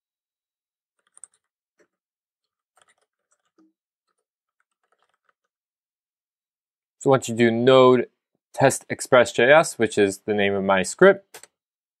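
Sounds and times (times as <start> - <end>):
keyboard typing: 1.0 - 5.5.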